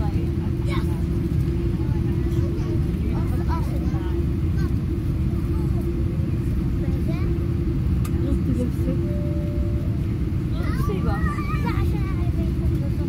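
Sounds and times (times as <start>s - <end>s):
airliner cabin rumble: 0.0s - 13.0s
faint passenger voices: 0.0s - 13.0s.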